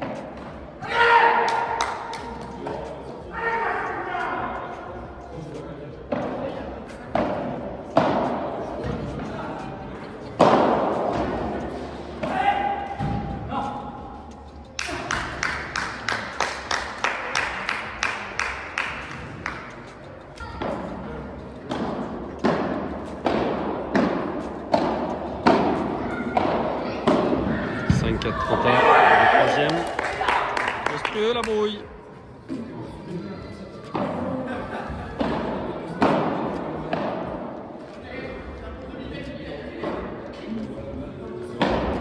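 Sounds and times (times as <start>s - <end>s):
racket hitting ball: 7.1s - 9.0s, 10.4s - 11.4s, 21.7s - 27.6s, 35.2s - 37.5s.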